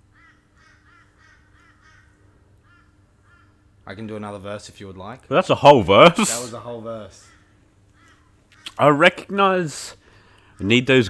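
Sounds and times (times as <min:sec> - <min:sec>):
bird calls: 0:00.0 - 0:03.8, 0:07.0 - 0:08.8
low steady hum: 0:00.0 - 0:11.0.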